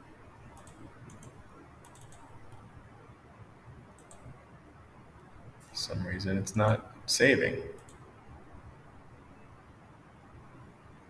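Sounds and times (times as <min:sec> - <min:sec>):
faint low hum: 0:00.0 - 0:11.0
computer mouse clicking: 0:00.5 - 0:02.7, 0:03.9 - 0:04.4, 0:07.8 - 0:08.1.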